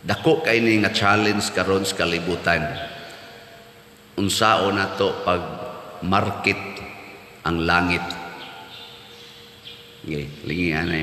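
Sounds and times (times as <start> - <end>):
faint steady hum: 0.0 - 11.0
voice echo in church: 0.0 - 11.0.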